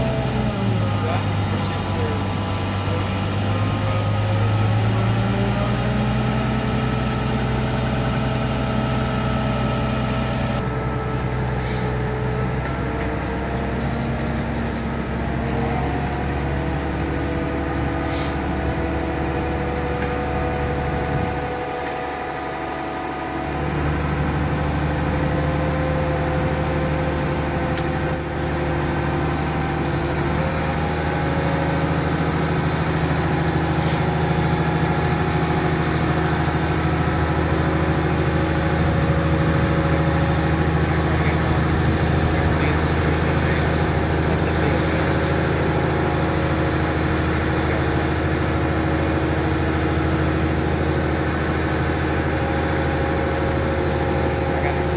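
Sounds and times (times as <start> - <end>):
diesel engine droning: 0.0 - 54.9.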